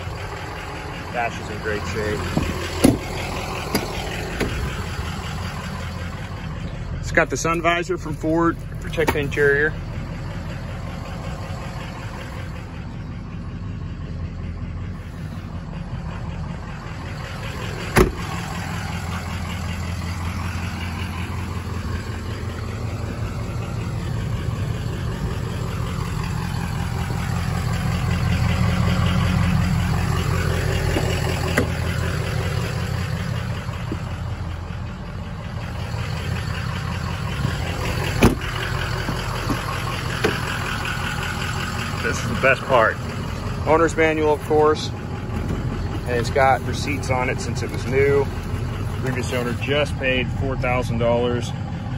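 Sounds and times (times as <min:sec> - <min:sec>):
diesel engine idling: 0:00.0 - 0:51.9.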